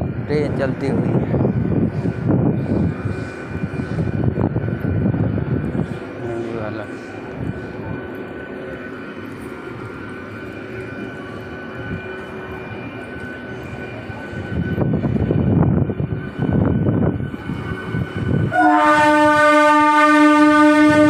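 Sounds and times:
train drone: 0.0 - 21.0.

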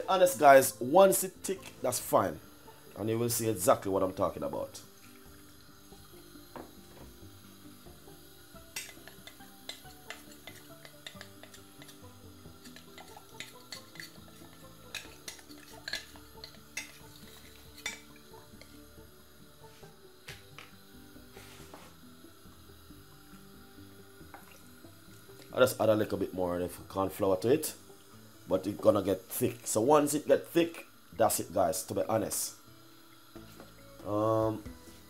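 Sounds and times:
quiet background music: 0.0 - 35.0
utensils clinking against dishes: 12.6 - 18.2.

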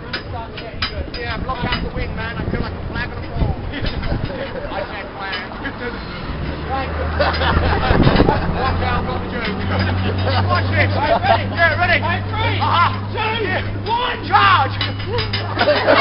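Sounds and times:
crowd chattering and laughing: 0.0 - 16.0.

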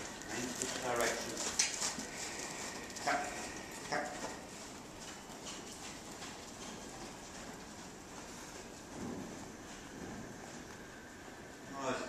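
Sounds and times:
hoofbeats on soft sand: 0.0 - 11.8.

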